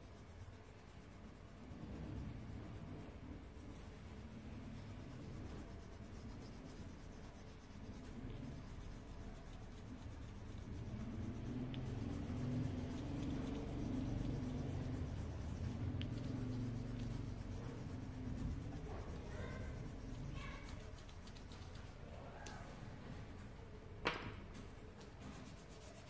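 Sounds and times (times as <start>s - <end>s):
coloured pencil scratching on paper: 0.0s - 22.2s, 25.0s - 26.0s.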